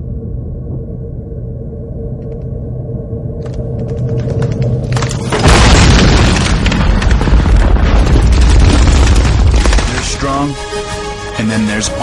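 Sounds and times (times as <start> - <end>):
explosion booms: 5.3 - 10.1.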